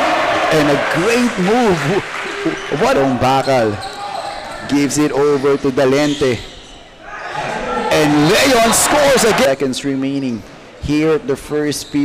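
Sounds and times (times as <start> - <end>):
man commentating excitedly: 7.8 - 9.9.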